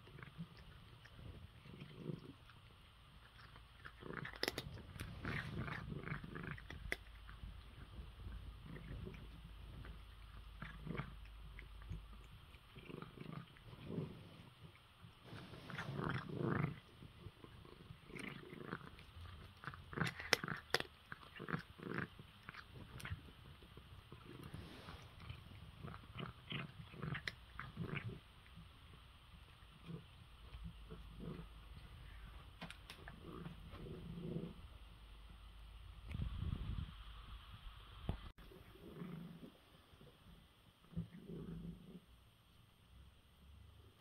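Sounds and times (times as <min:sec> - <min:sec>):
cat crunching dry kibble: 0:00.0 - 0:34.5.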